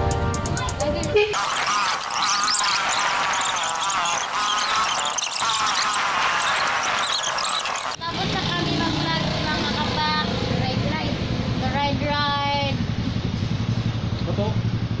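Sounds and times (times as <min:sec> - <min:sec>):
music with voice: 0:00.0 - 0:01.4
voices: 0:01.1 - 0:12.8
motorcycle engine idling: 0:11.3 - 0:15.0.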